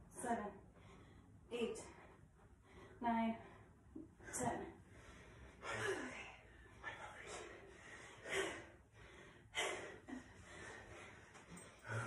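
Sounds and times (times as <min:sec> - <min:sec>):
person breathing hard: 0:04.8 - 0:12.0.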